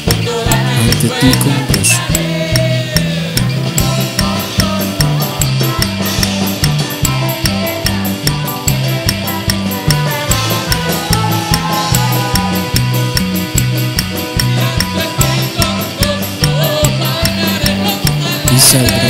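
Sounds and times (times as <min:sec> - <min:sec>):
drum kit with cymbals: 0:00.0 - 0:19.0
electric bass line: 0:00.0 - 0:19.0
keyboard: 0:00.0 - 0:19.0.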